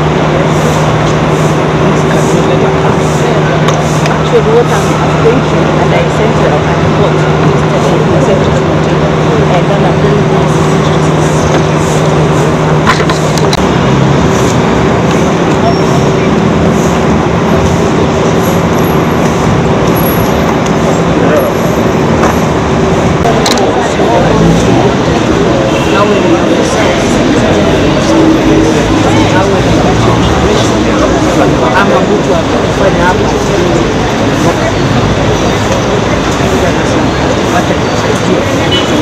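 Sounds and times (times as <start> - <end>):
crowd chatter: 0.0 - 39.0
road traffic: 0.0 - 39.0.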